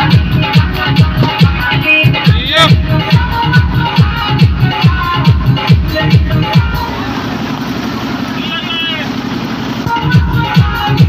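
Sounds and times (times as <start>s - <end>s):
kick-drum beat: 0.0s - 7.7s, 9.0s - 11.0s
electronic dance music: 0.0s - 11.0s.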